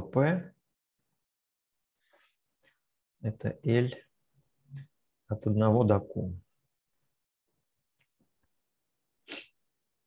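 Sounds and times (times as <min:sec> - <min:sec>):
sharp puff of breath: 0:09.2 - 0:09.6.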